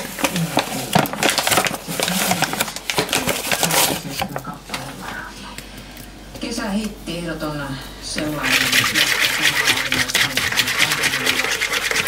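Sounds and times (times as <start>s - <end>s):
paper bag rustling and crinkling: 0.0s - 5.0s.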